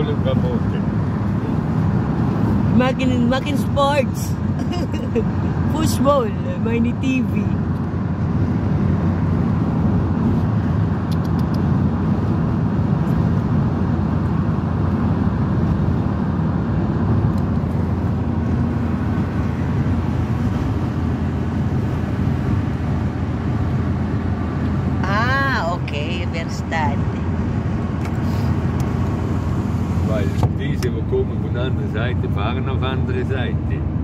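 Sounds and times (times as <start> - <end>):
truck engine and road noise: 0.0 - 34.0.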